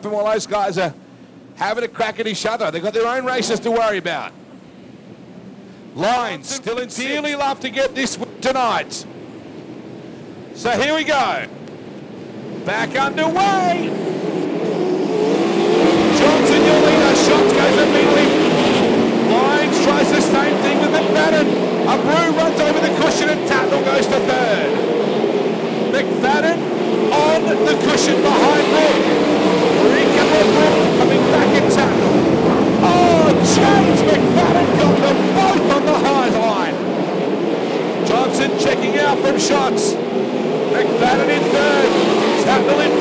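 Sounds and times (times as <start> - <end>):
race car engines passing: 2.8 - 43.0.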